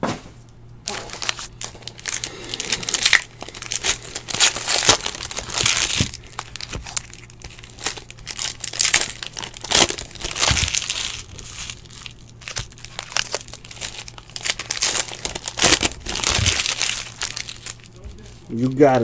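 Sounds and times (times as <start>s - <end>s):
foil wrappers crinkling and tearing: 0.8s - 19.0s.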